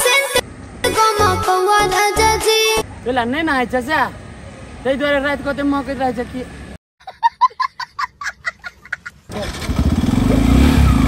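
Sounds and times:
small child laughing: 0:07.0 - 0:09.3
motorcycle engine rumble: 0:09.1 - 0:11.0.

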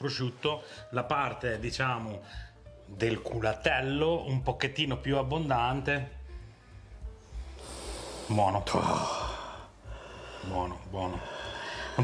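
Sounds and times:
man sniffing: 0:07.5 - 0:08.3.

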